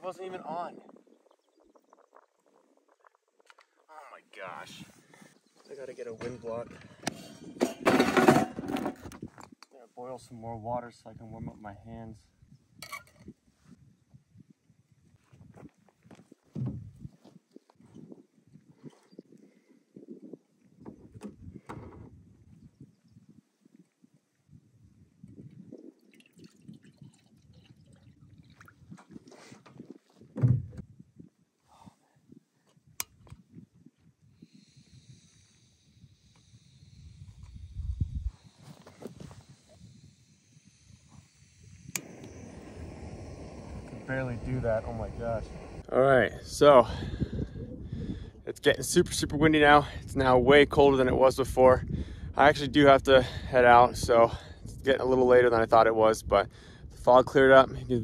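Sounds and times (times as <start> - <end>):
wind on microphone: 0.0 - 3.8, 4.6 - 9.6, 10.2 - 58.0
water pouring into pot: 25.9 - 28.9
gas hissing from stove burner: 34.4 - 45.9.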